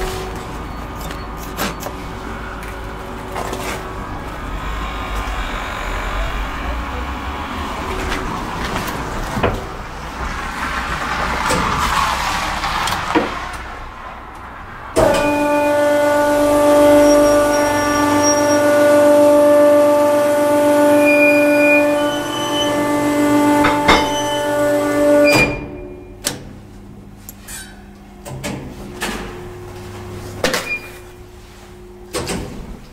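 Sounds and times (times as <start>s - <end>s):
hydraulic pump motor humming: 0.0s - 10.6s, 15.0s - 26.6s.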